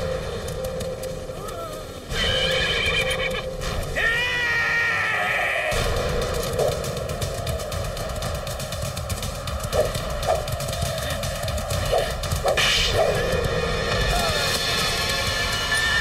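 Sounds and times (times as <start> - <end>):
horse hoofbeats galloping: 0.0 - 3.5, 5.7 - 16.0.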